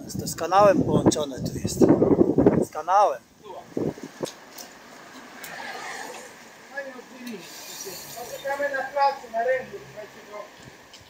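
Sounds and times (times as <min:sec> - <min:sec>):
wind and riding noise: 0:00.0 - 0:09.2
cyclists talking: 0:00.2 - 0:11.0.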